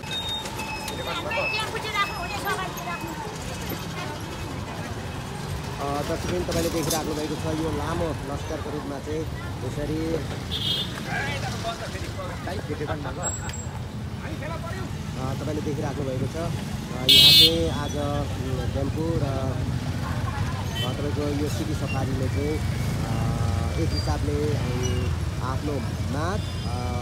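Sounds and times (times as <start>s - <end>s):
motorcycles passing: 0.0s - 27.0s
voices of passers-by: 0.0s - 27.0s
vehicle horn beep: 17.0s - 17.8s.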